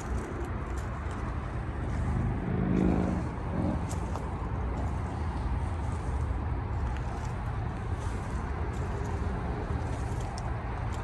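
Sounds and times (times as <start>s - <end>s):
low rumble of road traffic: 0.0s - 11.0s
passing vehicle engine: 0.0s - 11.0s.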